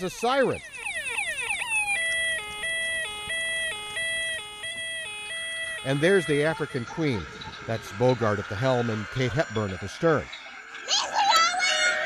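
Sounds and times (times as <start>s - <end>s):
electronic siren: 0.0s - 11.0s.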